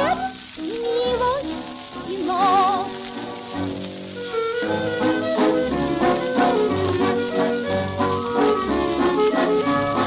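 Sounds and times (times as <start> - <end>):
dance orchestra playing a waltz: 0.0 - 10.0
record surface crackle: 0.0 - 10.0.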